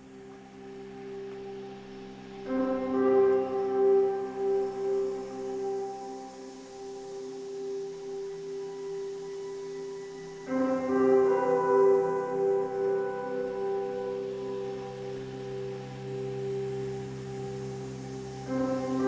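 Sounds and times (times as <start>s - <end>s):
music of sustained ringing tones: 0.0s - 19.0s.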